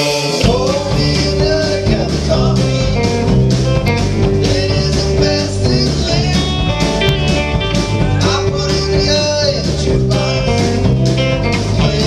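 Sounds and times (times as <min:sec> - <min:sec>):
country rock band playing: 0:00.0 - 0:12.0.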